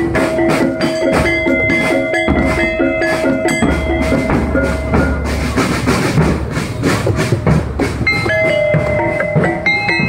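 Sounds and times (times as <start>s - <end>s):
melody of held notes: 0.0s - 6.1s, 8.0s - 10.0s
marching drums beating: 0.0s - 10.0s.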